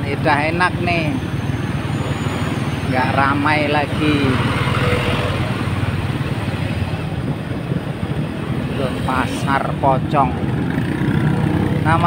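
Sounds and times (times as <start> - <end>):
road and air noise: 0.0 - 12.0.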